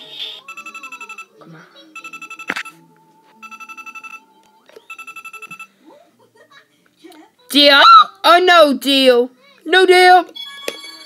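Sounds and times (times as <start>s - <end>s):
rapid beeps: 0.4s - 1.3s, 2.0s - 2.8s, 3.4s - 4.2s, 4.9s - 5.7s
electronic telephone-style ring: 0.5s - 1.3s, 2.0s - 2.8s, 3.4s - 4.2s, 4.9s - 5.7s.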